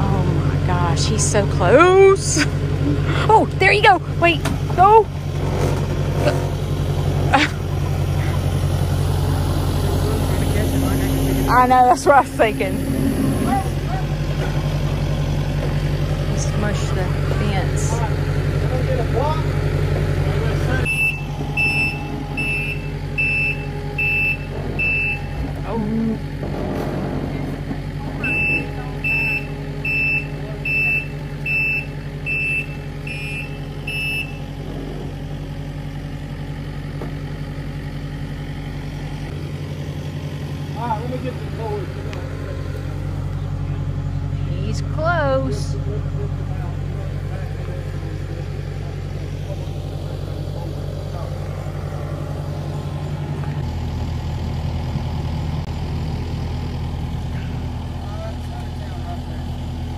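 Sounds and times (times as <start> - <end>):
loader engine running: 0.0 - 59.9
backup alarm beeping: 20.8 - 26.4, 28.1 - 34.6.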